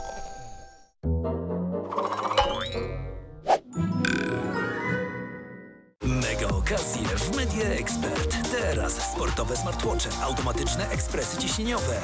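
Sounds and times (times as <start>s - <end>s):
bright cartoon jingle: 0.0s - 5.9s.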